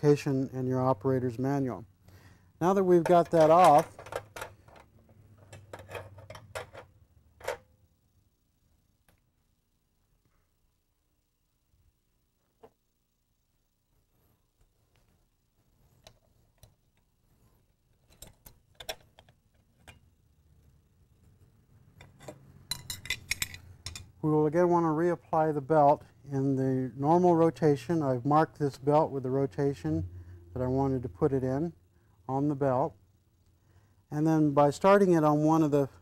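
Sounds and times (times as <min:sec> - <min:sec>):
metal tools and parts clinking: 0:03.0 - 0:07.7, 0:17.9 - 0:20.1, 0:22.0 - 0:24.1.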